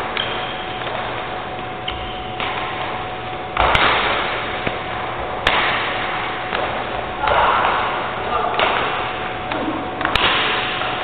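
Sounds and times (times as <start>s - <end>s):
racket hitting shuttlecock: 0.0s - 1.1s, 1.8s - 10.9s.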